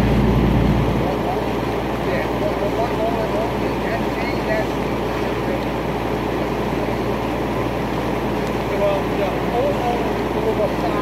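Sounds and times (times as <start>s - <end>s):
fire engine pump rumbling: 0.0s - 11.0s.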